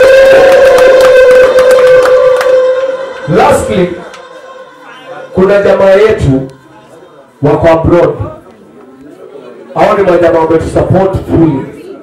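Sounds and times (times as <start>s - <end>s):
high-pitched tone over loudspeakers: 1.4s - 8.8s.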